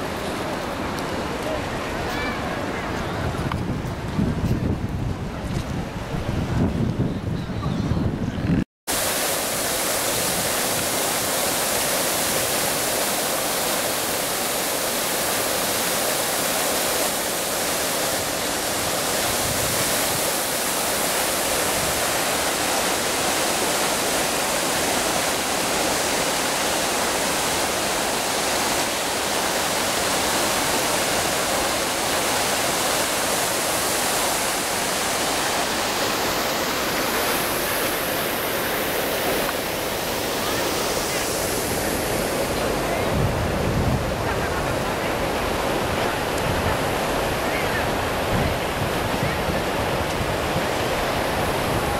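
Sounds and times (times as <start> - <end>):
fountain water splashing into pool: 8.9 - 51.9.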